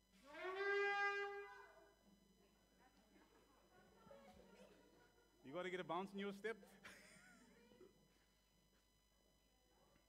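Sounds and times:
shofar horn note: 0.2 - 1.8.

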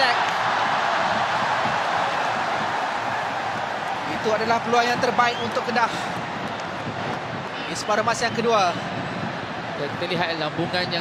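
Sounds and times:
stadium crowd voices: 0.0 - 11.0.

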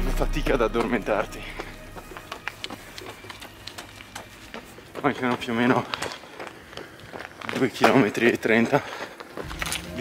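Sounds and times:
running footsteps on pavement: 0.0 - 10.0.

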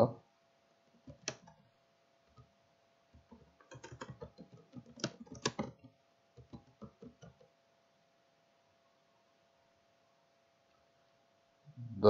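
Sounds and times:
computer keyboard typing: 1.0 - 1.6, 3.2 - 7.5.

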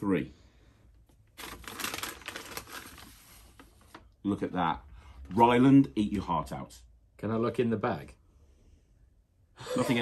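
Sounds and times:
paper bag crackling and rustling: 1.3 - 4.1.

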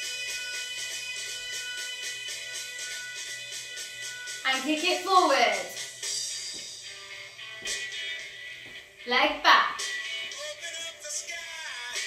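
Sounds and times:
upbeat pop workout music: 0.0 - 12.0.

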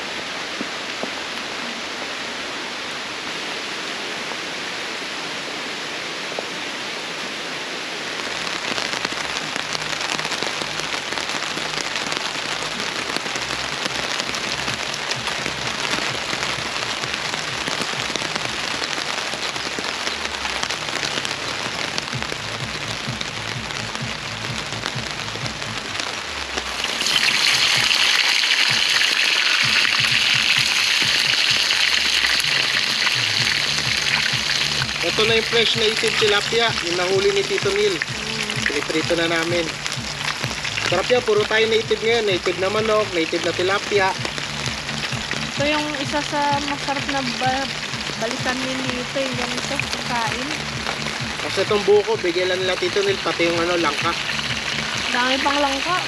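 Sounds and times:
rain falling: 0.0 - 56.0.

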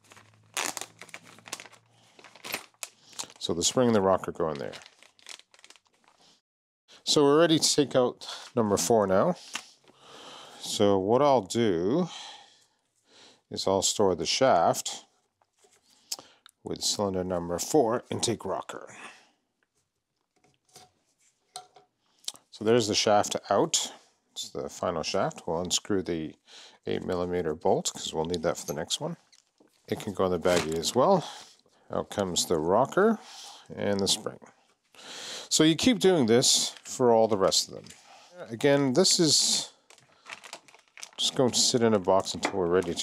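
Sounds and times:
plastic bag crinkling: 0.0 - 6.3, 39.5 - 43.0.

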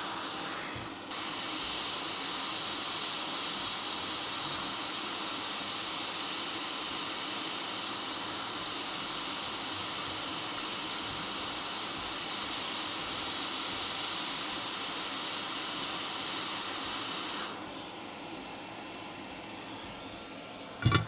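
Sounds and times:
hot-air station airflow hiss: 0.0 - 21.0.

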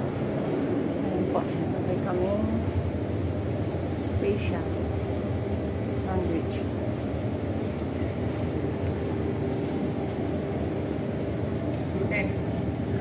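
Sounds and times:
faint steady hum: 0.0 - 13.0
low mechanical rumble: 0.0 - 13.0.

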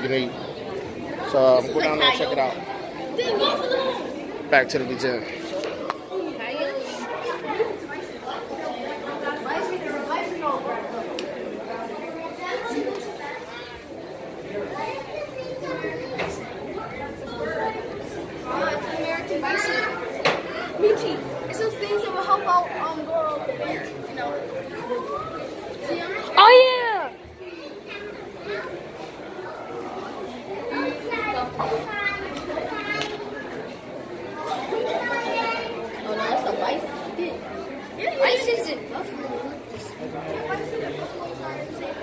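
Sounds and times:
crowd chatter in hall: 0.0 - 42.0.

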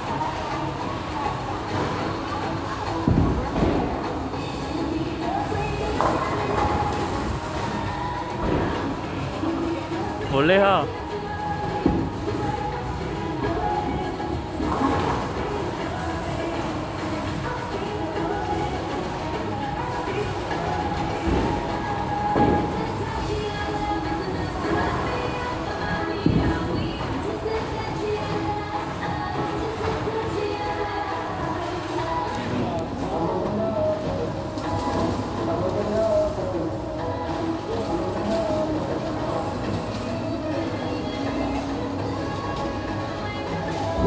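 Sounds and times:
background music: 0.0 - 44.0
bowling balls rolling down lanes: 0.0 - 44.0.

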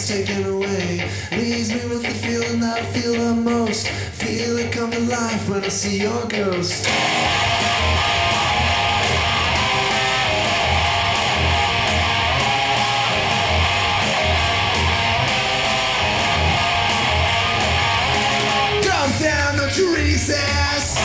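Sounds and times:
rock guitar strumming: 0.0 - 21.0
low bass pulse: 6.9 - 18.6.

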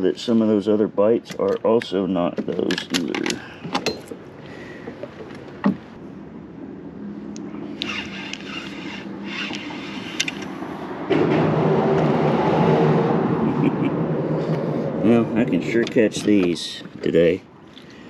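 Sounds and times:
handling noise: 1.2 - 6.0
spinning reel cranking: 7.8 - 10.4.

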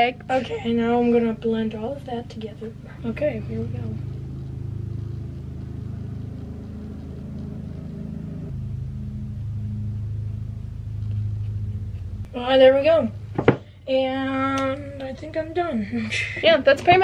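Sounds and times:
low engine-like rumble: 0.0 - 17.0.

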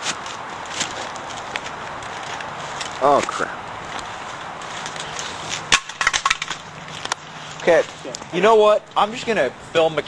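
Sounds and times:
outdoor noise: 0.0 - 10.0.

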